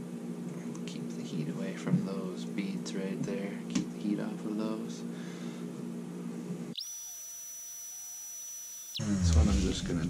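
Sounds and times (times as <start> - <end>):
heat gun humming: 6.8 - 9.4.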